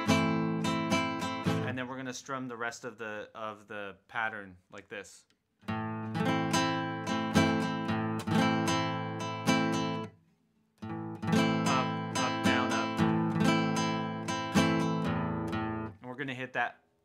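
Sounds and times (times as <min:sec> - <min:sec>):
nylon-string guitar strumming: 0:00.0 - 0:01.9, 0:05.6 - 0:10.2, 0:10.8 - 0:16.0.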